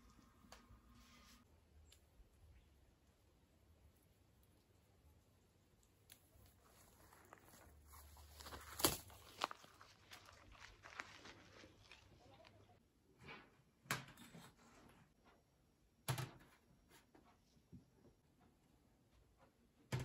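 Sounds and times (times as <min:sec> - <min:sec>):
leafy branches rustling: 0:06.0 - 0:12.7
snaps of fruit being picked: 0:08.4 - 0:09.7.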